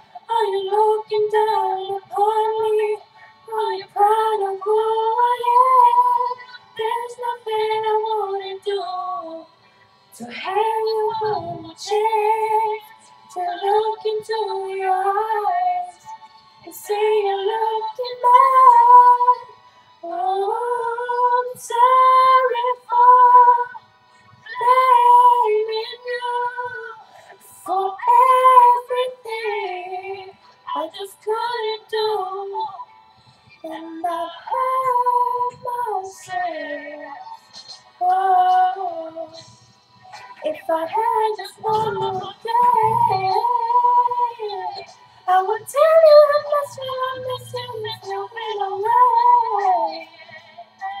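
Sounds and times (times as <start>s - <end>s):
woman singing unaccompanied: 0.0s - 9.5s, 10.1s - 16.0s, 16.6s - 23.8s, 24.5s - 32.9s, 33.6s - 37.4s, 38.0s - 39.5s, 40.4s - 51.0s.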